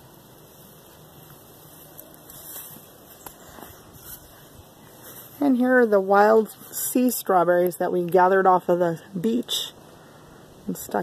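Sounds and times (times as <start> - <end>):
faint background noise: 0.0 - 11.0.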